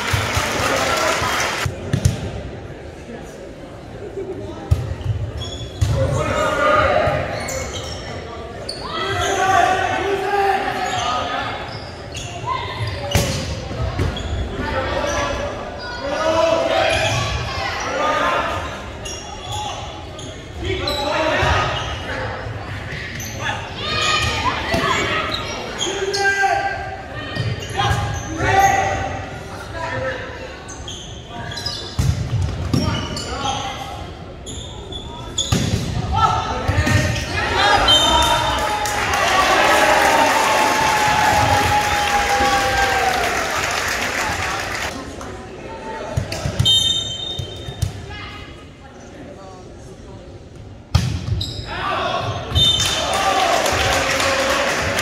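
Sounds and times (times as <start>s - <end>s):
shouting and chatter: 36.0s - 48.8s.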